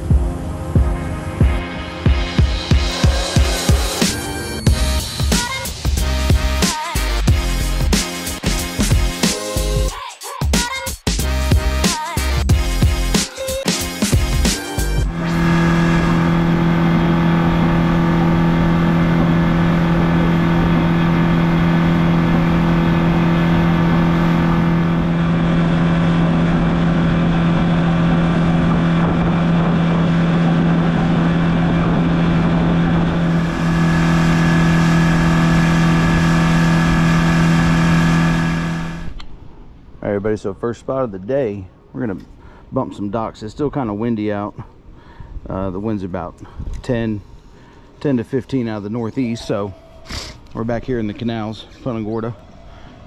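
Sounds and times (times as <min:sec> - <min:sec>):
outboard motor humming: 0:00.0 - 0:09.9, 0:13.8 - 0:39.2.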